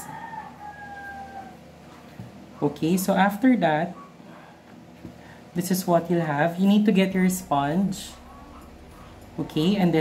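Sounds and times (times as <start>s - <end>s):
rooster crowing: 0.0s - 1.7s.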